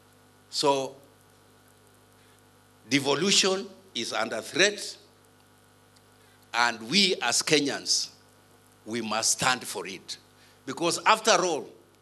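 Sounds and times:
electrical mains hum: 0.0 - 12.0
man talking: 0.5 - 1.0, 2.9 - 5.0, 6.6 - 8.2, 8.9 - 11.8.

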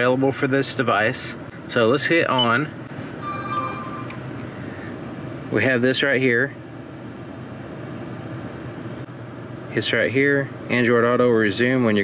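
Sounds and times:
air conditioning fan in car: 0.0 - 12.0
faint electronic tone: 3.2 - 4.8.

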